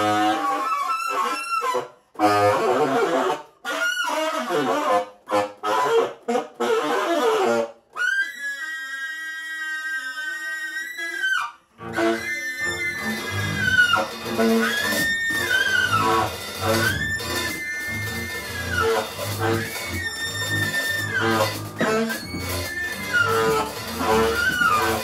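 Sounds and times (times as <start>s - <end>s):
tenor saxophone high notes: 0.0s - 25.0s
bowed double bass: 11.8s - 25.0s
drums: 12.8s - 25.0s.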